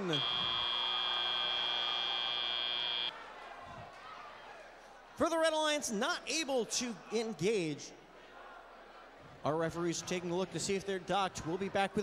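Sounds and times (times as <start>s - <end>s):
high-pitched electronic buzzer: 0.0s - 3.1s
murmur of crowd: 3.1s - 12.0s.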